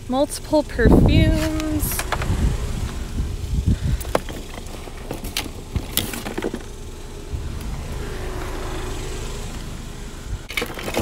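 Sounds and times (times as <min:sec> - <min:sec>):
steady low rumble: 0:00.0 - 0:10.5.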